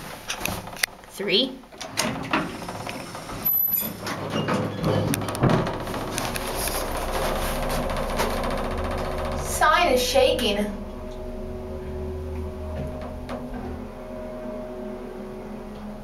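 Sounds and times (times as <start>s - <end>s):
elevator door clicks and knocks: 1.7s - 9.7s, 12.6s - 13.8s
hydraulic pump motor humming: 1.8s - 16.0s.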